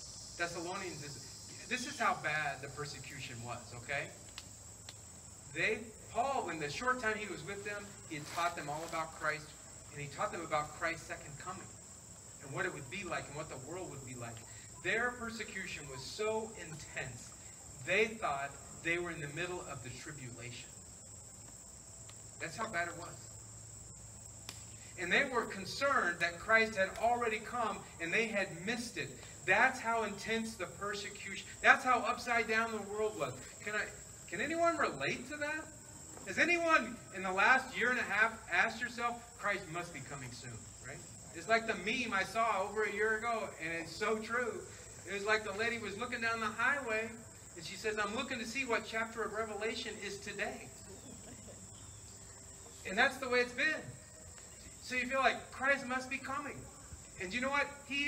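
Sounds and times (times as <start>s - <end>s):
crickets trilling: 0.0s - 58.0s
small tick: 4.2s - 5.0s, 24.4s - 24.7s.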